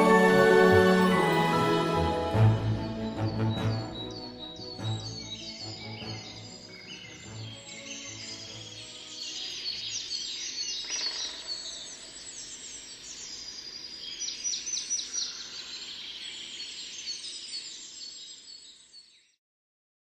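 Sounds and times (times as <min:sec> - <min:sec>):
birds chirping: 0:00.0 - 0:19.2.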